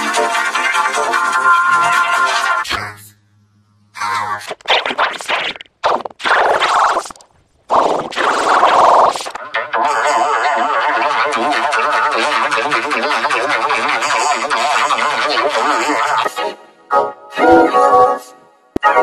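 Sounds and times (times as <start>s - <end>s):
dense warbling sound: 2.6s - 13.3s
garbled vocal bursts: 3.9s - 16.4s.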